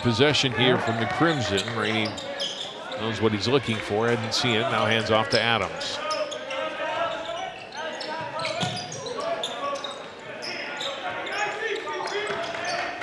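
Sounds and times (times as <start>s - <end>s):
voices of players and crowd: 0.0s - 13.0s
sneaker squeaks: 1.2s - 3.1s, 5.2s - 13.0s.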